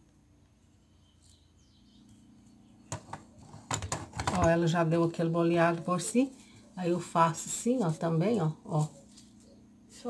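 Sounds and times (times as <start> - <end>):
faint bird chirps: 0.6 - 2.9.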